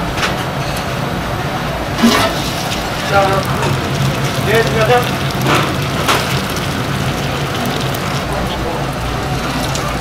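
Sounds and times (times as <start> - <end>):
broth pouring and splashing: 2.0 - 10.0.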